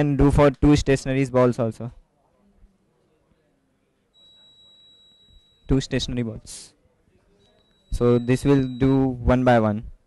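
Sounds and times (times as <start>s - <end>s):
high-pitched electronic beep: 4.2s - 6.1s, 7.4s - 9.2s.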